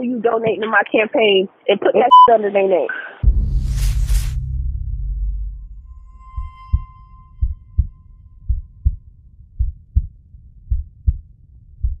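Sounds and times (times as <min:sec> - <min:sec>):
heartbeat double thump: 0:03.2 - 0:12.0
bell-like ringing tone: 0:05.7 - 0:08.8.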